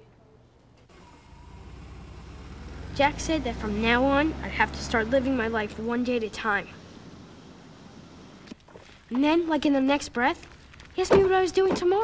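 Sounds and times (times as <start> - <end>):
car engine rumbling: 0.9 - 11.7.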